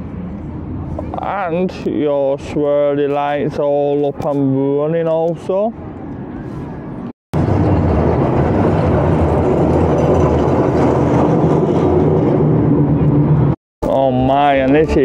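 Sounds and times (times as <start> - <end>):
tram rumbling past on rails: 7.4 - 13.6.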